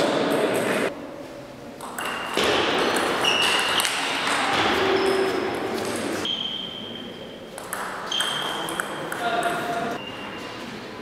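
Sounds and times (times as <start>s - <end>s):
sneakers squeaking on floor: 1.8s - 10.7s.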